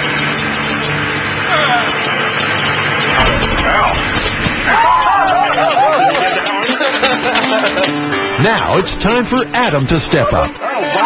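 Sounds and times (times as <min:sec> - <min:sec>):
generator humming: 0:00.0 - 0:10.8
low rumble: 0:03.0 - 0:06.3
people's voices: 0:03.1 - 0:11.0.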